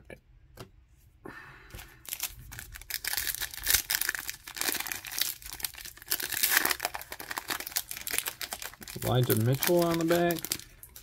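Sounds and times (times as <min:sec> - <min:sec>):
plastic wrapper crinkling and tearing: 0:02.0 - 0:11.0.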